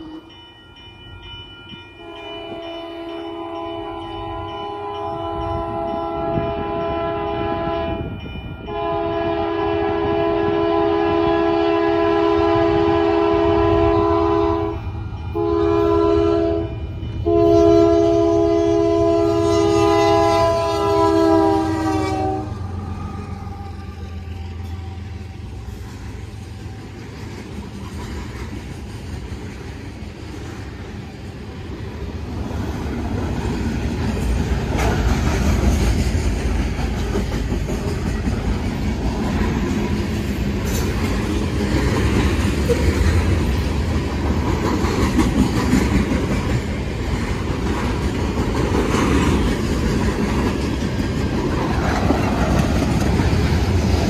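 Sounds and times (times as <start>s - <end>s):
locomotive horn blasts: 0.0s - 0.4s, 2.0s - 25.6s
freight cars rumbling: 22.1s - 54.0s.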